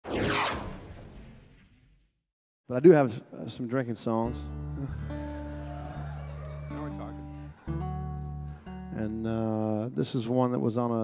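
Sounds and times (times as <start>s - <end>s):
falling whoosh sweep: 0.0s - 2.0s
low rumble: 0.0s - 2.0s.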